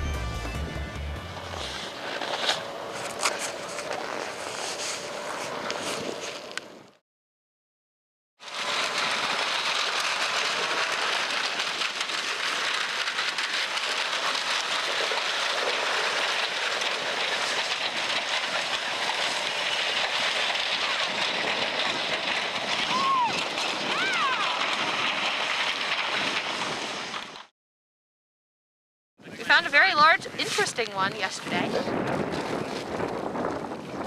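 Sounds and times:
wind hissing across ice: 1.6 - 6.8, 29.4 - 32.0
people cheering: 22.9 - 24.6.

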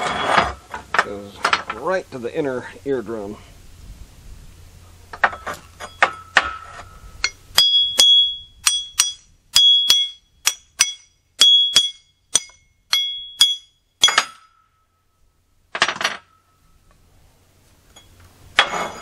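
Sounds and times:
hammer striking axe head: 7.2 - 14.6.

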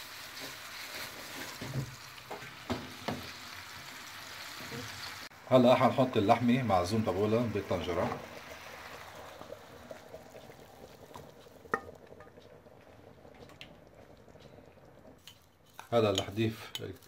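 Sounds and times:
stew bubbling and sizzling: 0.0 - 17.0
spatula knocking on pan: 1.6 - 3.3.

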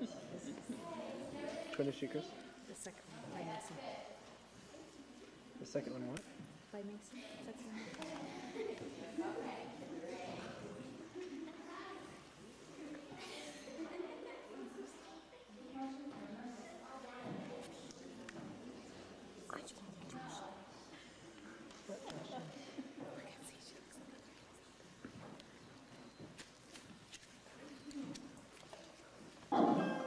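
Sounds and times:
faint whispery voices: 6.7 - 26.2.

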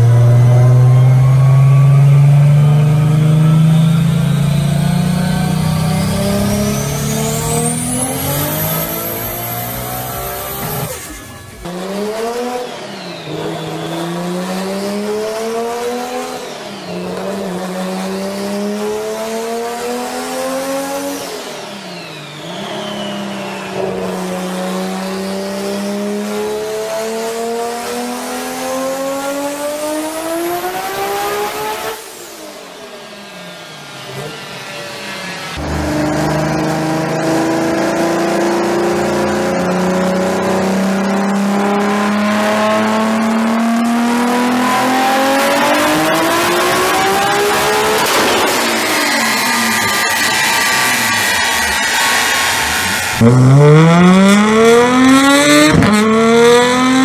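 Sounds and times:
car engine revving on dynamometer: 0.0 - 57.0
high turbo whine: 0.0 - 57.0.

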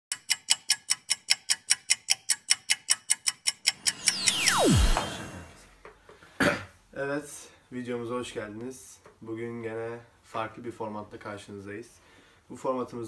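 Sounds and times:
whoosh with falling tone: 3.7 - 5.7.

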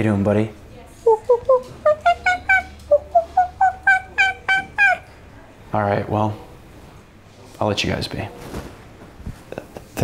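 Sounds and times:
monkey hooting: 1.1 - 5.1.

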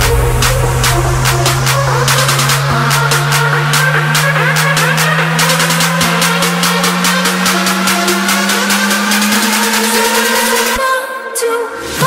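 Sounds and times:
rapid noise pulses: 0.0 - 10.8.

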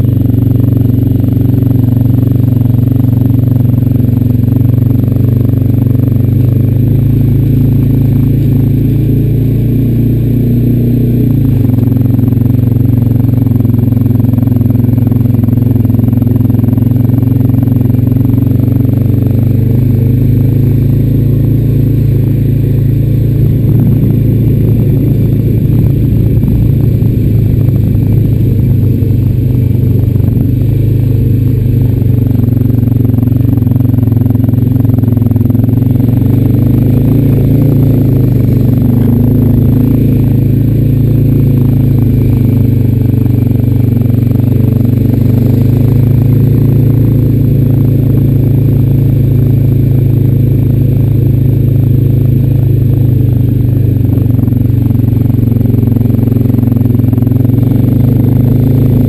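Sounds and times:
atv engine running: 0.0 - 59.0.

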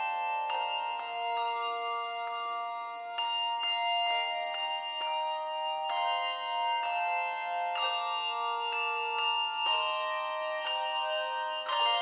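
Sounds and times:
handbells ringing: 0.0 - 12.0.

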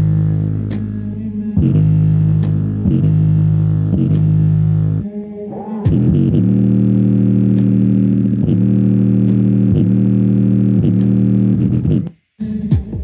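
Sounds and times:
downward-sliding bass drops: 0.0 - 12.2
bass-heavy music from speaker: 0.0 - 13.0.

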